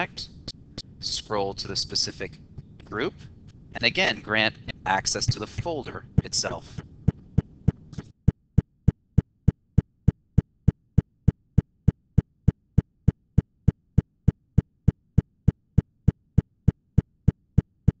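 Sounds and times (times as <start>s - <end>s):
short low thumps: 4.9s - 8.0s.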